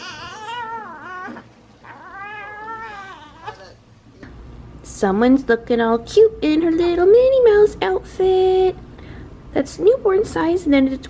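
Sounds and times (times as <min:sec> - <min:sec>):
newborn baby crying: 0:00.0 - 0:03.8.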